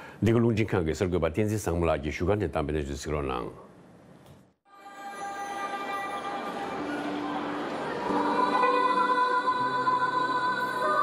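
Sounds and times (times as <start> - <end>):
women's choir singing: 4.7 - 11.0.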